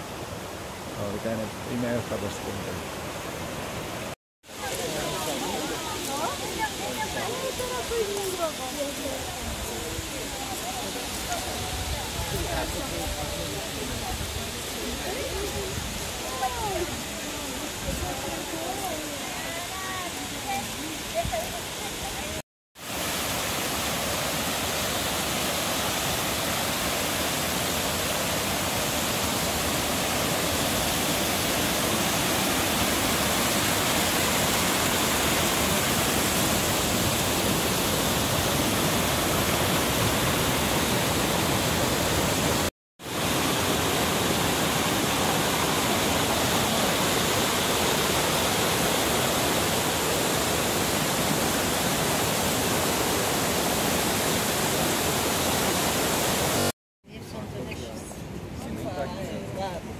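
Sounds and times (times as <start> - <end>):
waterfall rushing over rocks: 0.0 - 56.7.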